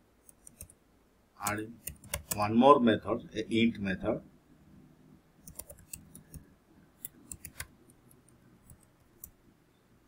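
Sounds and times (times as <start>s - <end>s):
faint keyboard typing: 0.2s - 0.8s, 1.4s - 2.5s, 5.4s - 9.5s.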